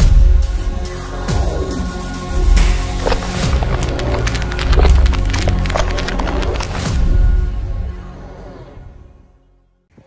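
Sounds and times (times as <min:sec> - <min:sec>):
cracking splintering effects: 0:02.6 - 0:07.0.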